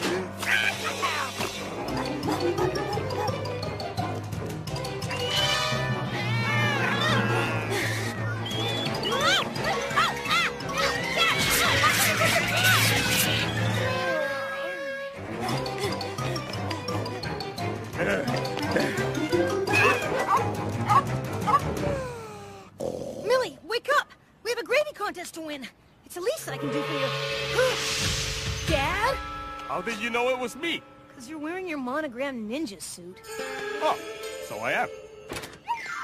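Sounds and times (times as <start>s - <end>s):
cartoon dogs barking and snarling: 0.4s - 3.5s, 19.6s - 22.0s
cartoon music: 4.9s - 22.0s, 33.2s - 36.0s.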